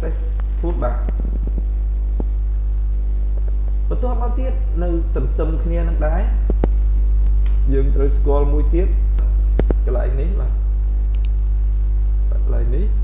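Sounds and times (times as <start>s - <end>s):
person speaking: 0.0s - 1.5s, 3.9s - 6.8s, 7.4s - 10.7s
low electrical mains hum: 0.0s - 13.0s
sharp clicks: 11.1s - 11.4s.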